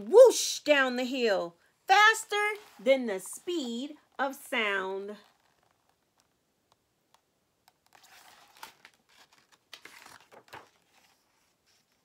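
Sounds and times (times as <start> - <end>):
paper book pages rustling: 2.5 - 3.4, 7.7 - 12.0.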